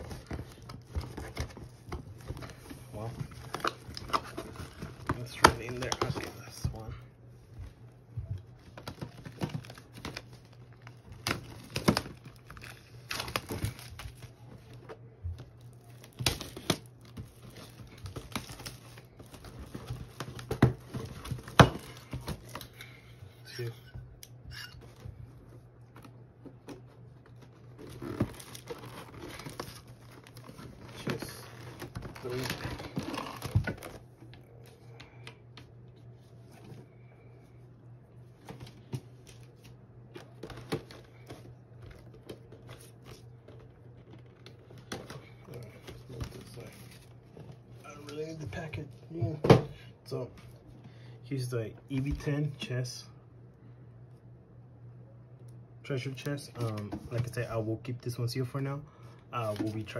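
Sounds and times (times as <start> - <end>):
steady low hum: 0.0 - 59.9
plastic shrink-wrap tearing and crinkling: 8.7 - 14.5, 15.6 - 22.7, 27.2 - 34.0.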